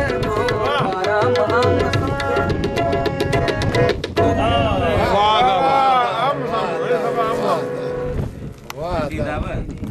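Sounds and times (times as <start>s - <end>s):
man singing: 0.0s - 7.8s
harmonium note: 5.6s - 8.6s.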